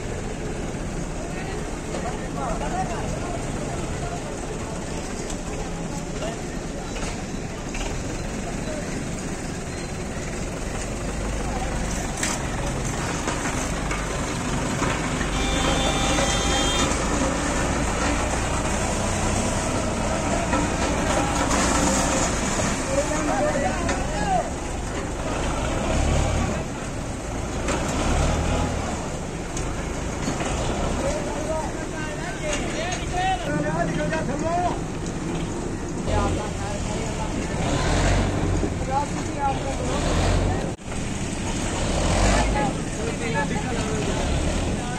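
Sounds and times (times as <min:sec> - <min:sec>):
tractor diesel engine under load: 0:00.0 - 0:44.9.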